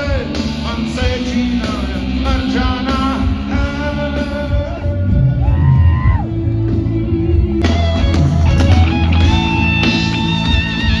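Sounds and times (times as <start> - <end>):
live band music with heavy bass: 0.0 - 11.0.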